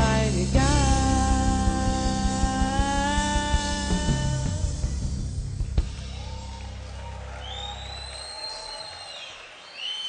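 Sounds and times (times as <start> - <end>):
long high whistle: 7.4 - 10.0.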